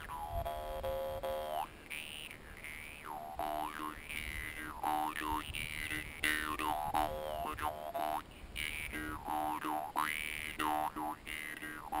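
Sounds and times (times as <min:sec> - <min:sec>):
jaw harp twanging melody: 0:00.0 - 0:12.0.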